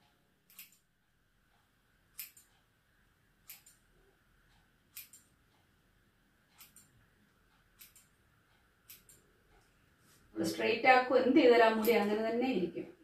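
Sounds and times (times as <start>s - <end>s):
scissors snipping hair: 0.5s - 0.8s, 2.1s - 2.5s, 3.5s - 3.8s, 4.9s - 5.3s, 6.6s - 6.9s, 7.8s - 8.1s, 8.8s - 9.2s, 11.7s - 12.4s.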